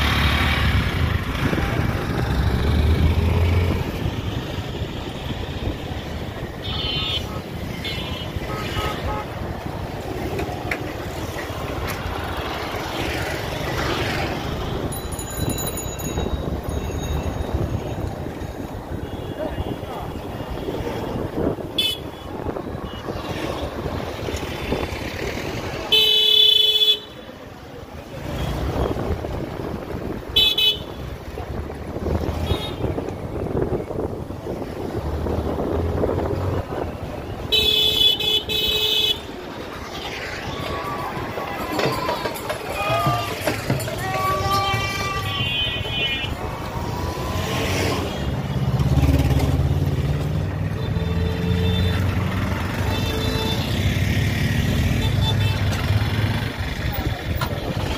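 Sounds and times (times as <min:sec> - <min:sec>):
street traffic rumble: 0:00.0 - 0:57.9
vehicle horns honking: 0:06.6 - 0:09.5, 0:21.7 - 0:23.1, 0:25.9 - 0:27.2, 0:30.4 - 0:31.1, 0:32.4 - 0:33.0, 0:37.4 - 0:39.3, 0:44.3 - 0:46.4, 0:50.7 - 0:53.9, 0:54.9 - 0:55.8.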